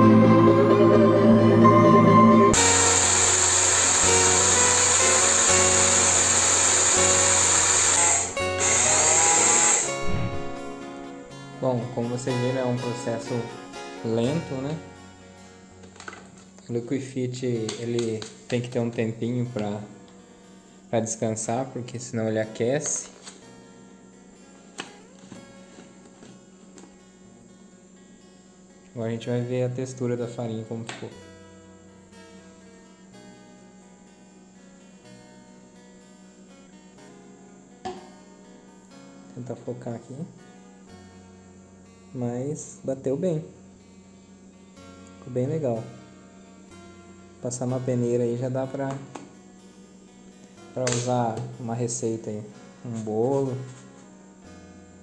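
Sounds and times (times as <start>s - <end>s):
background music: 0.0s - 20.2s
quiet guitar music: 0.0s - 55.0s
blender motor grinding rice: 2.6s - 10.4s.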